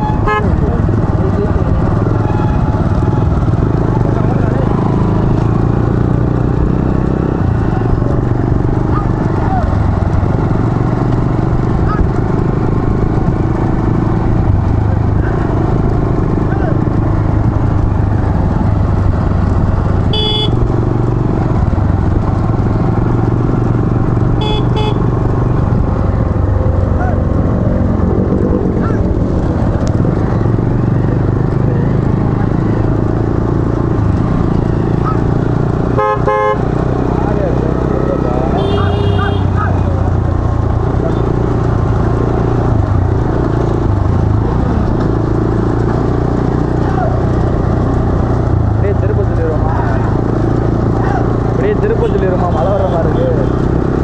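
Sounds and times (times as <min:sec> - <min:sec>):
horn beeps: 0:00.0 - 0:00.6, 0:20.1 - 0:20.6, 0:24.4 - 0:25.1
long horn honk: 0:00.0 - 0:00.6, 0:02.2 - 0:03.4, 0:20.0 - 0:20.7, 0:24.4 - 0:25.2, 0:35.9 - 0:36.7, 0:38.5 - 0:39.8
warbling horn tone: 0:00.0 - 0:00.6, 0:02.1 - 0:03.4, 0:20.1 - 0:20.6, 0:24.4 - 0:25.1, 0:35.9 - 0:36.6
motorcycle engines rumbling: 0:00.0 - 0:54.0.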